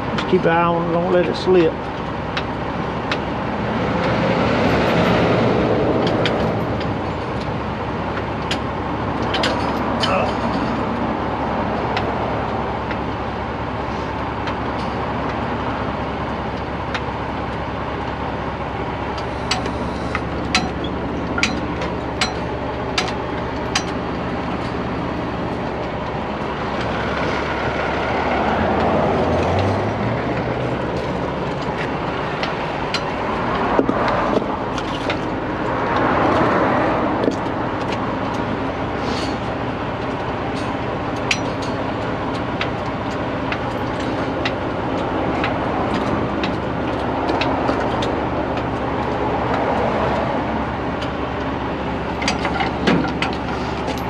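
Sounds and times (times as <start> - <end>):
truck engine idling: 0.0 - 54.0
vehicles passing: 0.0 - 54.0.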